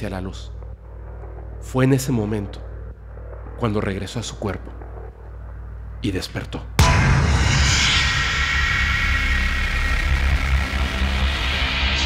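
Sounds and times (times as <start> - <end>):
deep rumble: 0.0 - 12.0.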